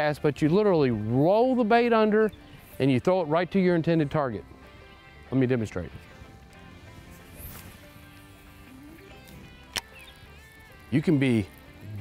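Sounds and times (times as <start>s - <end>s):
soft background music: 0.0s - 12.0s
fishing rod cast swish: 7.1s - 8.0s
sharp click: 9.7s - 10.1s.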